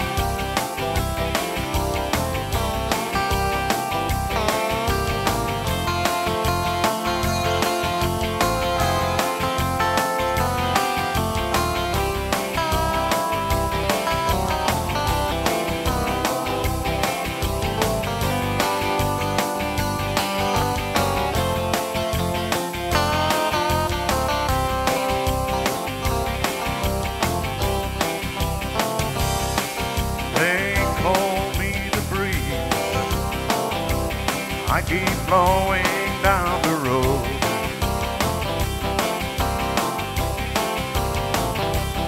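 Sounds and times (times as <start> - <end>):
bass and drum groove: 0.0 - 42.0
guitar lead with bent notes: 0.0 - 42.0.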